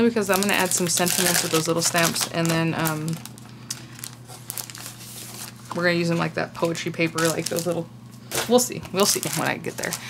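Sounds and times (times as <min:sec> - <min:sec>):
plastic wrapping crinkling: 0:00.2 - 0:10.0.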